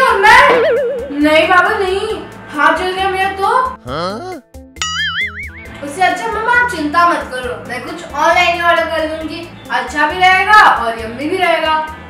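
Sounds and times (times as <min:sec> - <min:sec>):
cartoon boing: 0:00.4 - 0:02.0, 0:03.8 - 0:05.7
warbling tone: 0:00.4 - 0:02.2.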